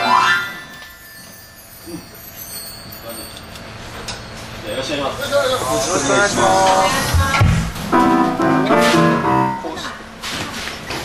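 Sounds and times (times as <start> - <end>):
steady low hum: 3.8 - 10.2.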